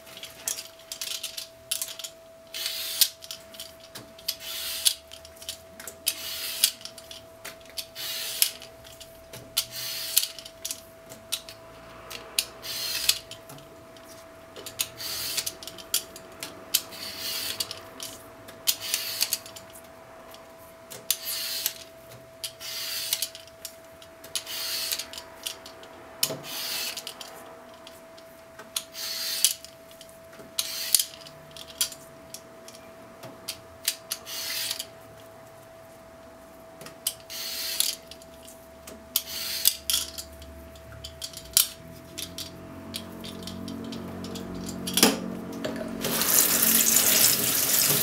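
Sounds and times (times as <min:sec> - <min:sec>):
peeler scraping radish skin: 0:46.0 - 0:48.0.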